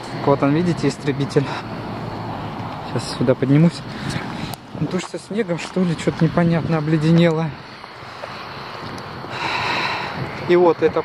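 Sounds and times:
wind on microphone: 1.6 - 5.4, 6.0 - 11.0.

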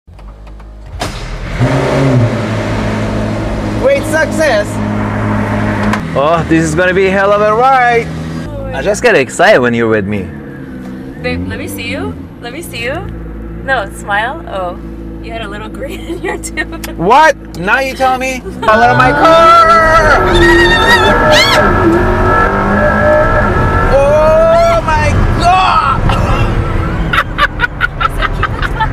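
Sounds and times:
car engine starting and idling: 0.1 - 28.9.

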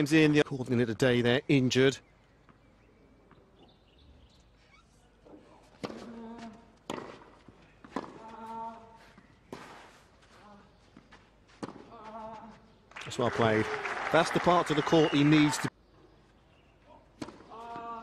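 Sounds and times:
racket striking tennis ball: 6.9 - 8.4.

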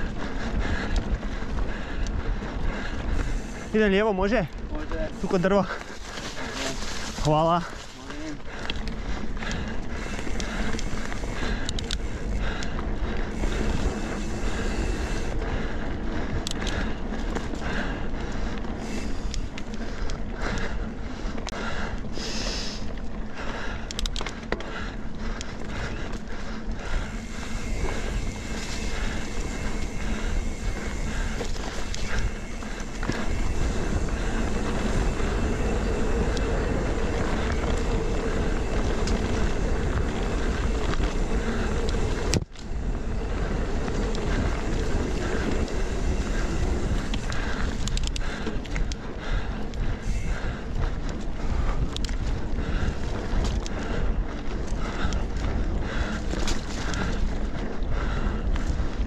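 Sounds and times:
bike rattling and clicking: 0.0 - 59.0
bike tyres on dirt and leaves: 0.0 - 59.0
low rumble: 4.5 - 59.0.

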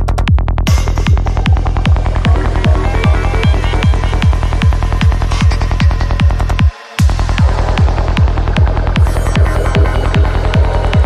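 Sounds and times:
kick drum: 0.0 - 11.0
rolling bassline: 0.0 - 11.0
synth layers: 0.7 - 11.0.

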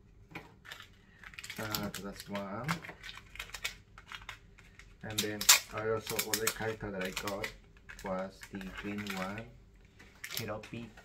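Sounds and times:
small items clicking and tapping: 0.3 - 11.0.

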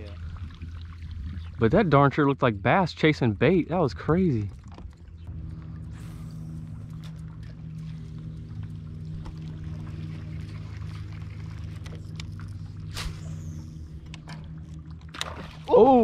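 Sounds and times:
boat motor humming: 0.0 - 16.0.

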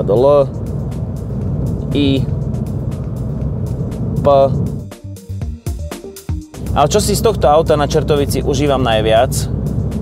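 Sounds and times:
diesel engine drone in car cabin: 0.0 - 10.0.

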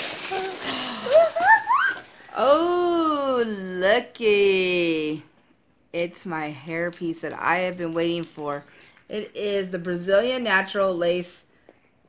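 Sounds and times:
packaging rustling: 0.0 - 2.3.

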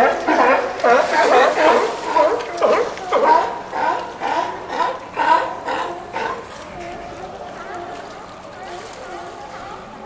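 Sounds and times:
sea lions barking: 0.0 - 10.0.

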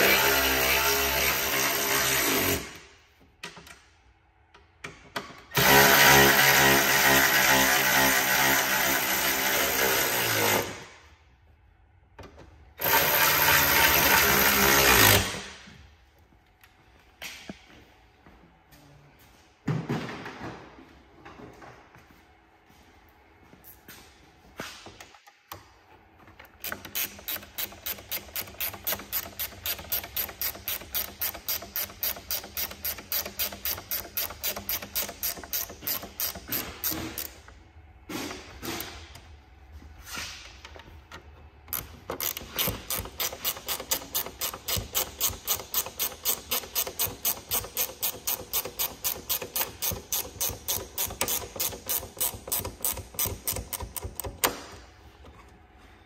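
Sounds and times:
hand ratchet clicking: 26.4 - 37.5, 41.7 - 54.7.

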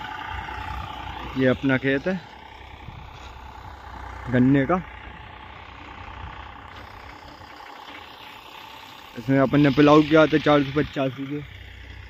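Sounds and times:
tractor engine running: 0.0 - 12.0.

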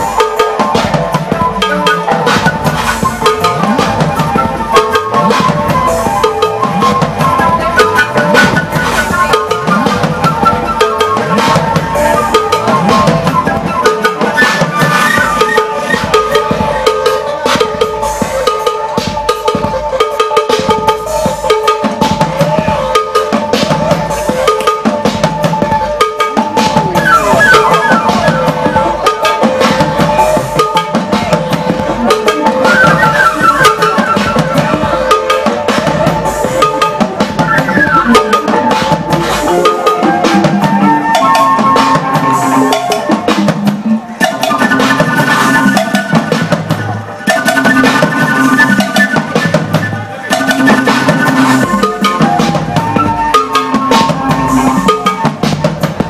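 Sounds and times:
drum beat: 0.0 - 56.0
flute melody: 0.0 - 56.0.

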